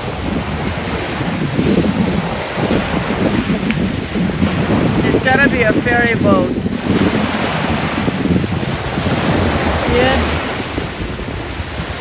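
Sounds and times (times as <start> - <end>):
choppy waves: 0.0 - 12.0
wind buffeting microphone: 0.0 - 12.0.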